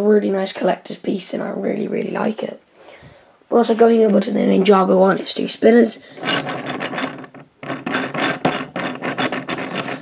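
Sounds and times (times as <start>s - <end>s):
plastic spinner clicking and rasping: 6.2s - 10.0s.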